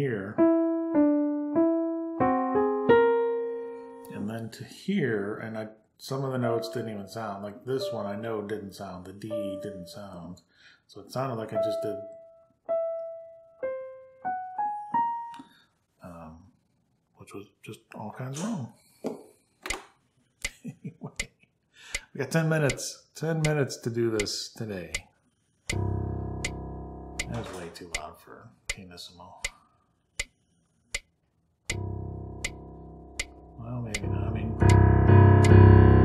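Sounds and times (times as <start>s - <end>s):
digital piano single notes: 0.0s - 4.3s, 11.4s - 15.5s, 25.7s - 28.0s, 31.7s - 36.0s
digital piano chord ringing: 6.3s - 7.2s, 9.3s - 10.0s, 25.7s - 27.7s, 31.7s - 36.0s
metronome ticking: 6.4s - 7.1s, 22.0s - 25.0s, 25.7s - 28.1s, 31.7s - 36.0s.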